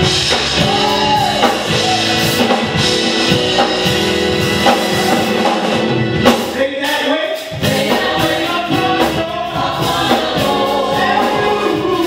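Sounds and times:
instrumental accompaniment: 0.0s - 12.0s
man singing gospel into microphone: 6.5s - 12.0s
choir backing voices: 7.4s - 12.0s.

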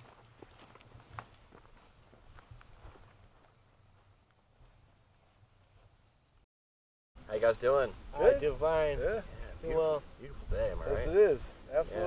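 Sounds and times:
faint footsteps walking: 0.0s - 6.5s.

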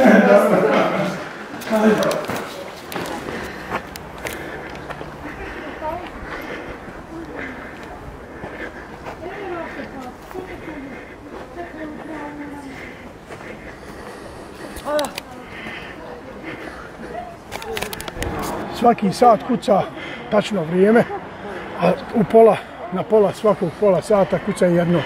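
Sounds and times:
indistinct group talking: 0.0s - 25.0s.

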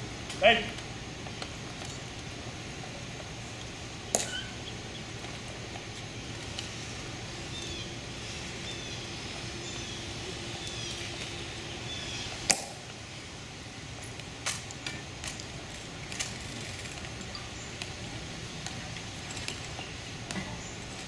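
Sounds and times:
bird chirping: 7.4s - 12.4s.

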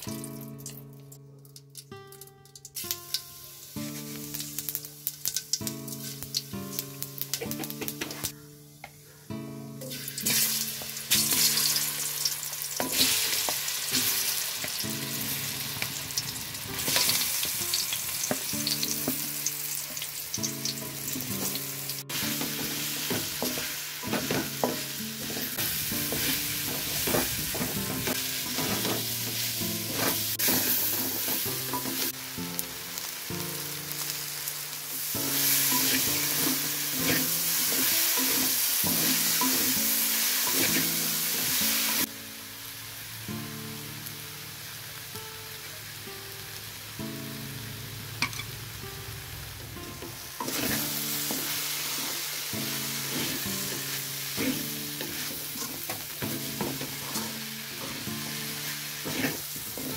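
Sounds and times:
plantain sizzling in hot oil: 2.6s - 8.3s, 9.8s - 59.9s
wooden spatula scraping pan: 59.0s - 59.9s.

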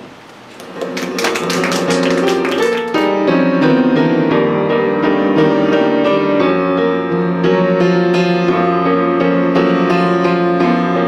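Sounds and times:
piano playing: 0.6s - 11.0s.

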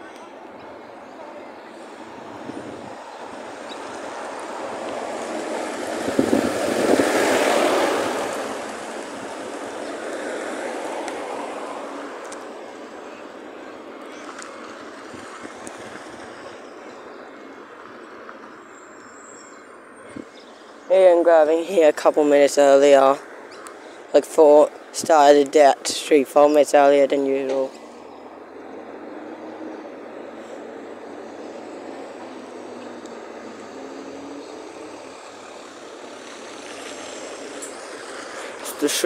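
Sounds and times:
vehicle driving past: 1.8s - 12.2s, 27.8s - 39.0s.

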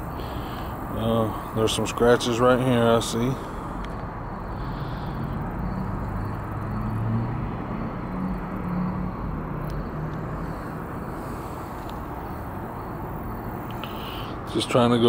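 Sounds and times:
low outdoor rumble: 0.0s - 15.0s
wavering low hum: 3.4s - 14.5s.

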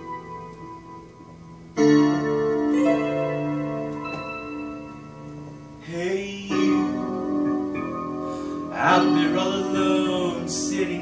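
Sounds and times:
digital piano chords: 0.0s - 11.0s.

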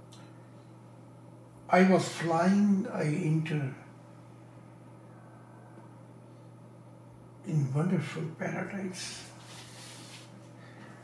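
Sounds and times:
low electrical hum: 0.0s - 11.0s
faint hiss: 8.9s - 10.4s.

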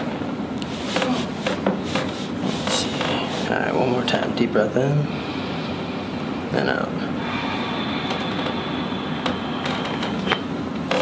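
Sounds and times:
background hum: 0.0s - 11.0s.

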